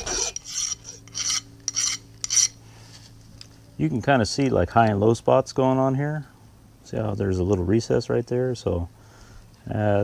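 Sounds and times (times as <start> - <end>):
hand file scraping metal: 0.0 - 2.6.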